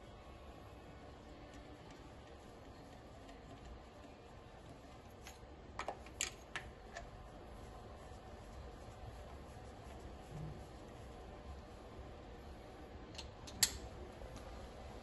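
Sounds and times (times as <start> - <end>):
faint room noise: 0.0 - 15.0.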